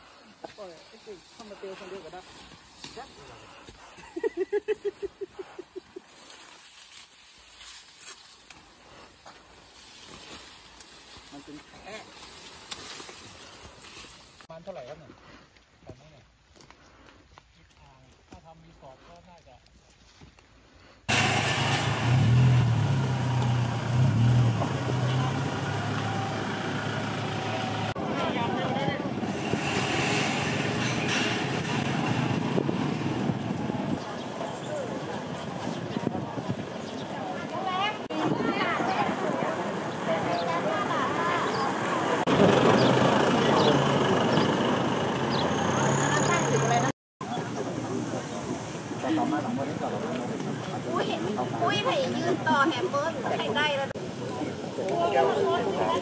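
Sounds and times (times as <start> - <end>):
road traffic: 21.0 - 56.0
car engine low hum: 21.1 - 28.2, 41.7 - 46.9
indistinct voices: 24.5 - 56.0
people talking: 24.9 - 29.2, 33.6 - 44.0, 45.6 - 56.0.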